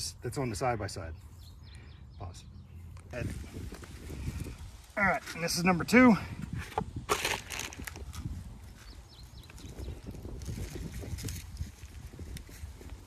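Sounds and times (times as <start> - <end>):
soil scraping and patting: 2.9 - 13.0
plastic pot rustling: 3.0 - 9.6.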